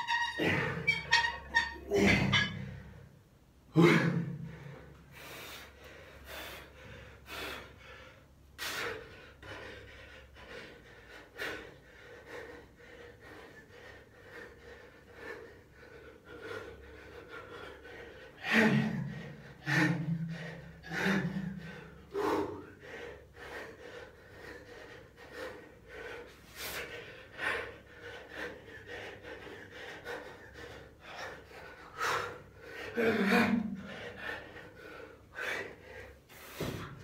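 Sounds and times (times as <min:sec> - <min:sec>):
man breathing hard: 0:03.8 - 0:37.0.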